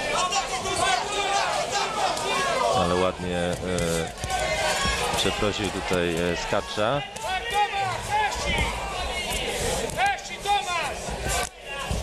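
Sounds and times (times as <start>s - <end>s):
crowd voices: 0.0s - 12.0s
man yelling instructions: 5.2s - 8.6s, 10.0s - 11.0s.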